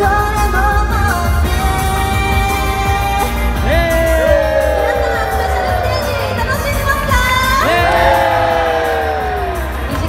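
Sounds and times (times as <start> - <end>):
pop backing track with bass: 0.0 - 10.0.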